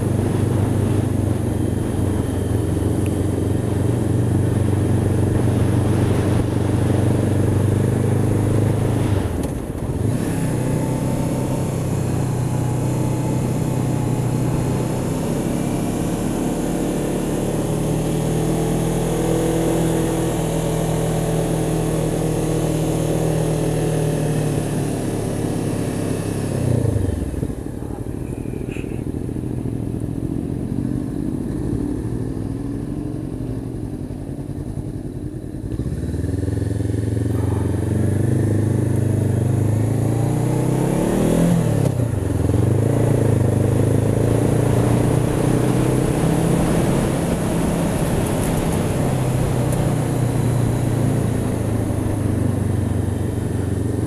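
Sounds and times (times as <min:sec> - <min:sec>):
wind rush: 0:00.0 - 0:10.2
motorcycle engine pulling uphill: 0:00.0 - 0:54.0.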